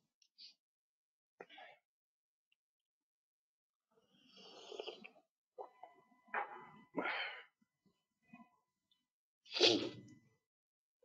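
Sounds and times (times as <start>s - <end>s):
person sneezing: 9.5s - 10.0s.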